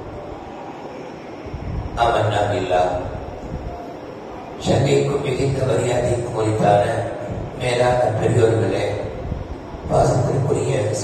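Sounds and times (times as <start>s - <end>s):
background rumble and hiss: 0.0s - 11.0s.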